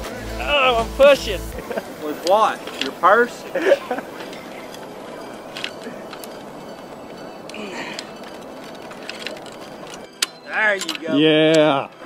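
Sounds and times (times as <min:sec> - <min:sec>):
steady background hiss: 0:00.0 - 0:12.0
lever hoist clicking: 0:05.5 - 0:12.0.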